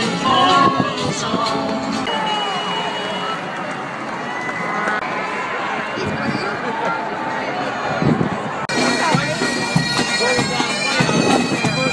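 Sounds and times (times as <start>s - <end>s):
crowd voices: 0.0s - 11.9s
bagpipes playing over drones: 8.7s - 11.9s.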